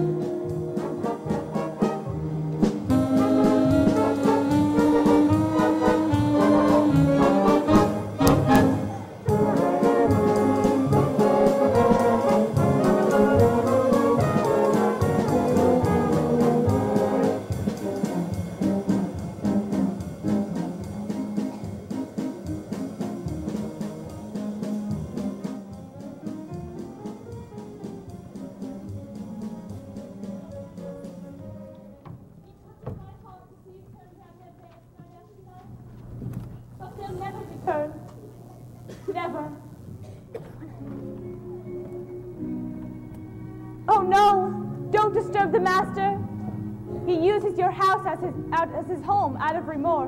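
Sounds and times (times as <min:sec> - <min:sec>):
orchestra playing brass-led music: 0:00.0 - 0:32.0.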